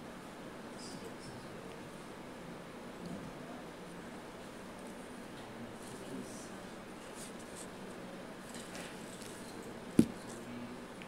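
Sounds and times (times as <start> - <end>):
soft scratching sounds: 3.2 - 10.7.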